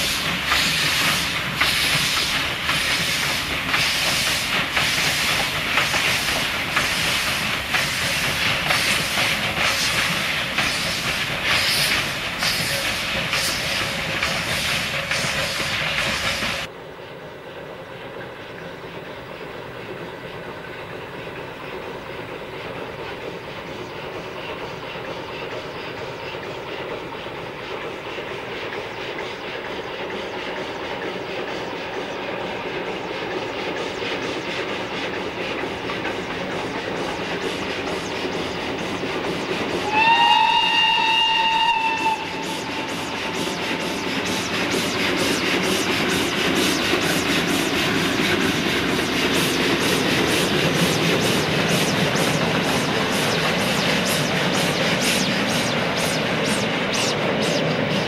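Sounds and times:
rail clatter: 0.0 - 16.7
steam locomotive running: 0.0 - 58.0
steam whistle: 39.8 - 43.1.

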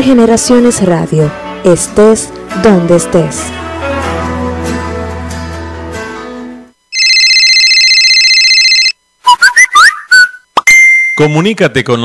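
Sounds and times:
telephone ring fluttering: 6.9 - 9.0.

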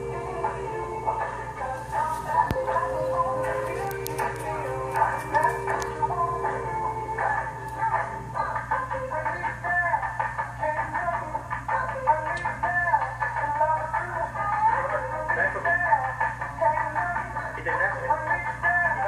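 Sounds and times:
low electrical hum: 0.0 - 19.0
music with singing from small speaker: 0.0 - 19.0.

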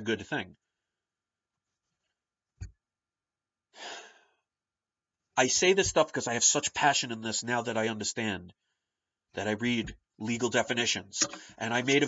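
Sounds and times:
man breathing loudly: 3.8 - 4.4.

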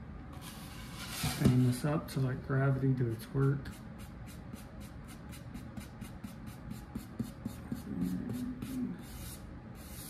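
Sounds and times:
paintbrush scrubbing on foam board: 0.4 - 1.6, 3.5 - 10.0.

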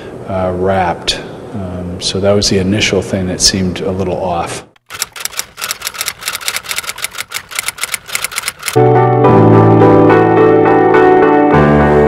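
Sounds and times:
typewriter keystroke clicks: 4.8 - 8.8.

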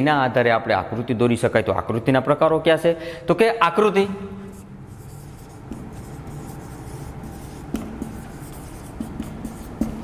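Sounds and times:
low room noise: 0.0 - 10.0
marker pen writing on whiteboard: 4.2 - 10.0.

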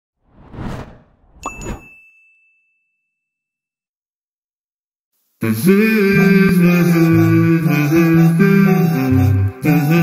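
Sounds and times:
bell-like ding: 1.4 - 3.5.

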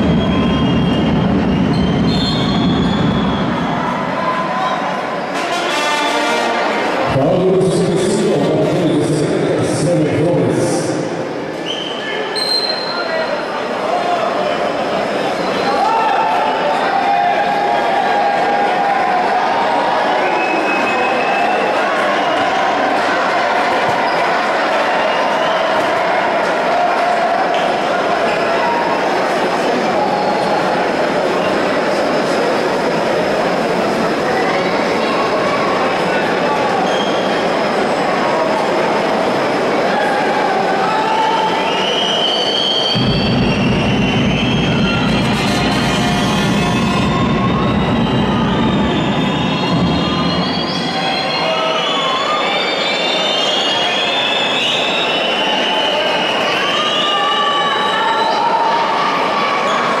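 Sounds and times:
shrill whistles and squeals: 0.0 - 4.0, 11.6 - 13.4, 36.8 - 37.5, 41.0 - 58.8
arena crowd din: 0.0 - 60.0.

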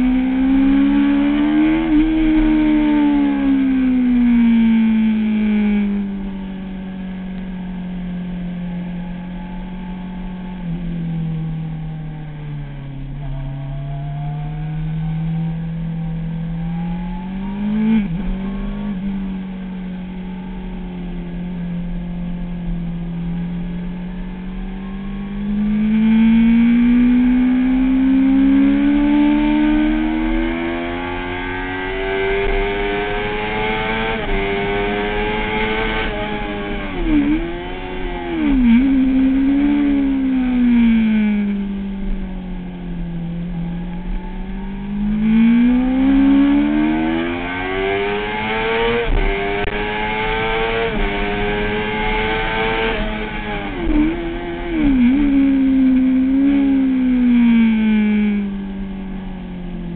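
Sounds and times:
motorcycle downshifting: 0.0 - 59.9
motorcycle engine revving: 0.0 - 59.9.

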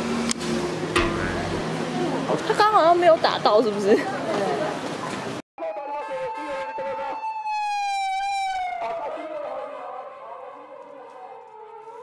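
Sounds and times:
emergency vehicle siren: 5.6 - 12.0.

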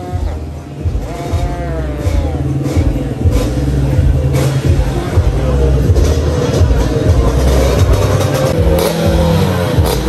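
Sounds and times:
scooter engine at full throttle: 0.0 - 10.0.

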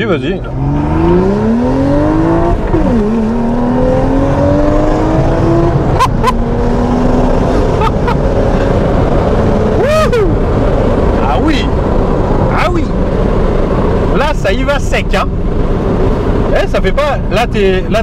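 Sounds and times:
car engine accelerating hard: 0.0 - 18.0.

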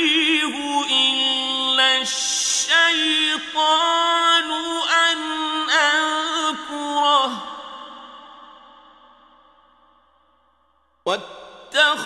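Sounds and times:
man chanting recitation: 0.0 - 7.5, 11.8 - 12.0.

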